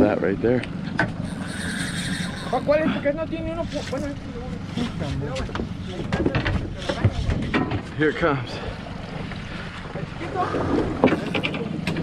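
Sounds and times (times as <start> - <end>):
water: 0.0 - 12.0
wind: 0.0 - 12.0
fishing reel clicking: 1.2 - 2.8.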